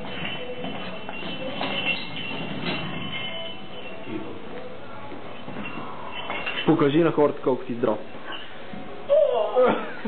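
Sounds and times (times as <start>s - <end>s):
ab wheel rolling on floor: 0.0s - 4.0s
high squeaky tones: 0.1s - 4.3s.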